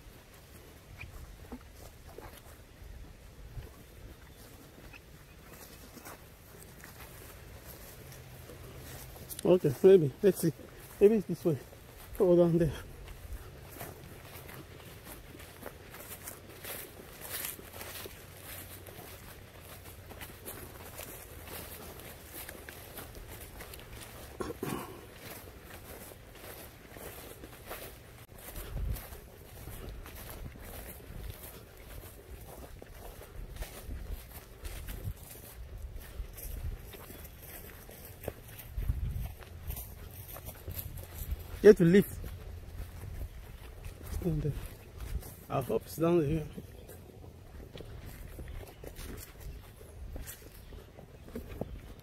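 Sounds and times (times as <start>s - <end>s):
footsteps on dirt trail: 0.0s - 52.0s
wind buffeting microphone: 28.4s - 31.4s, 38.6s - 41.5s.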